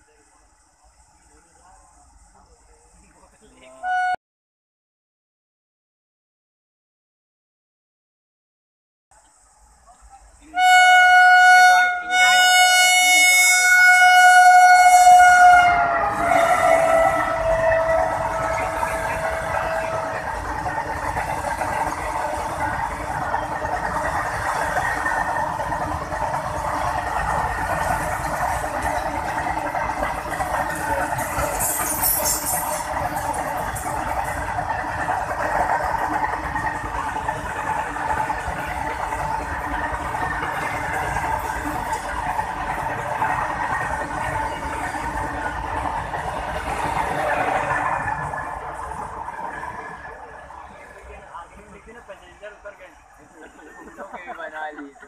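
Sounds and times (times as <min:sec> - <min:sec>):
train rumble and wheel clatter: 0:00.0 - 0:04.2, 0:09.2 - 0:55.0
locomotive horn: 0:03.8 - 0:04.2, 0:10.5 - 0:20.4.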